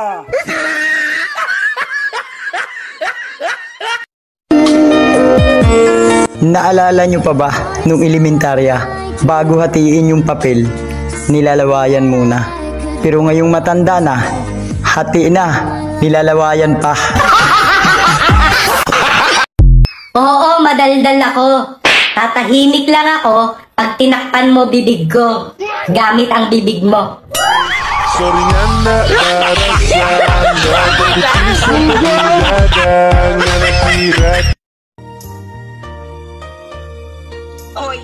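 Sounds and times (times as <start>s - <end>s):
laughter: 0.3s - 4.1s, 17.0s - 20.1s, 29.0s - 34.6s
music: 4.5s - 18.6s, 27.4s - 38.0s
person laughing in short bursts: 28.9s - 34.5s.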